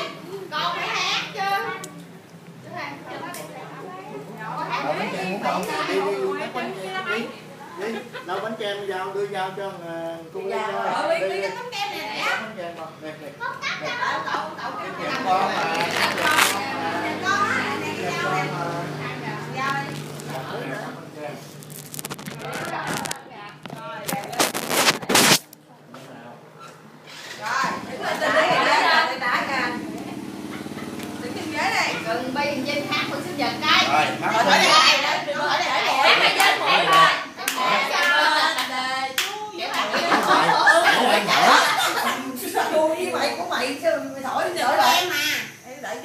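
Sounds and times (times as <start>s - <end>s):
voices: 0.0s - 46.0s
hand clapping in steady beat: 36.4s - 39.4s.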